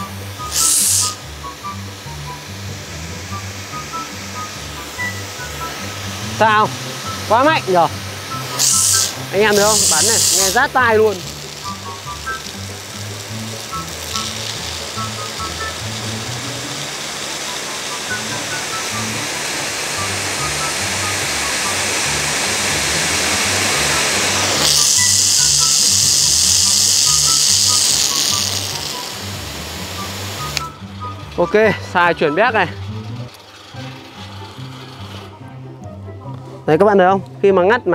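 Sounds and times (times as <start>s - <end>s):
pressure washer spraying asphalt: 0.0s - 35.3s
background music: 0.0s - 37.9s.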